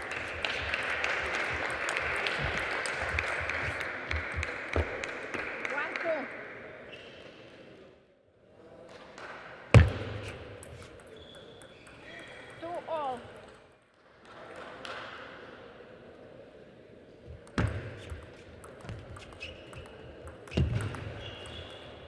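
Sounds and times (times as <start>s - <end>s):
table tennis ball clicking: 17.4s - 21.8s.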